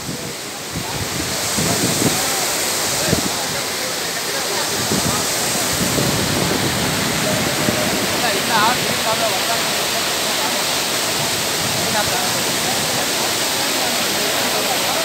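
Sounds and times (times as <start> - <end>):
water roaring over weir: 0.0 - 15.0.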